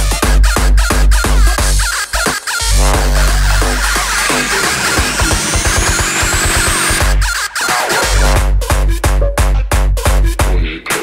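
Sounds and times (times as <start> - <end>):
faint high synth sweep: 2.7 - 7.2
short synth notes: 2.7 - 7.2
deep bass note: 2.7 - 7.3.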